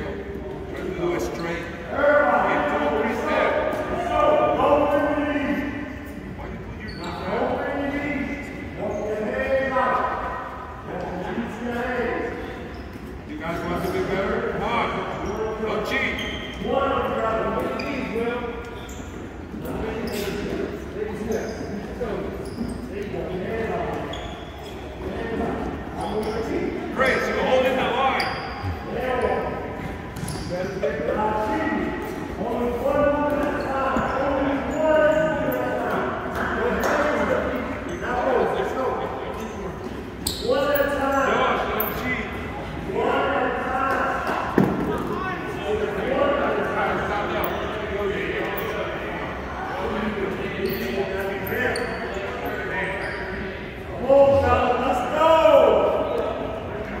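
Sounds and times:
boys chattering and calling: 0.0 - 57.0
voices echoing in a gymnasium: 0.0 - 57.0
shoe squeaks on hardwood floor: 6.1 - 7.6, 12.3 - 13.9, 15.0 - 16.7, 17.5 - 30.8, 33.0 - 38.4, 39.2 - 42.3, 50.6 - 53.6.

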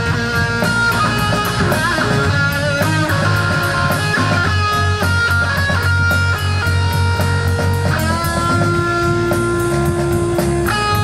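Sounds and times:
bass line: 0.0 - 11.0
electric guitar lead notes: 0.0 - 11.0.

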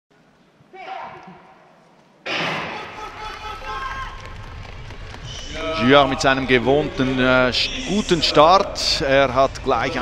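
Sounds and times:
voices in a hall: 0.6 - 10.0
starting gun bang: 2.3 - 3.4
running footsteps: 3.2 - 6.4
man commentating: 5.4 - 10.0.

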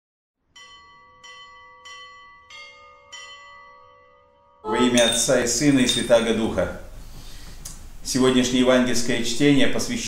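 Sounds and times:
church bells ringing: 0.6 - 6.5.

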